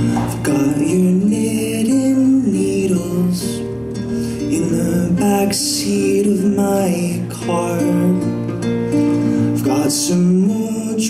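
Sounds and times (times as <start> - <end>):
fingerstyle acoustic guitar: 0.0 - 11.0
man singing slow melody: 0.0 - 11.0.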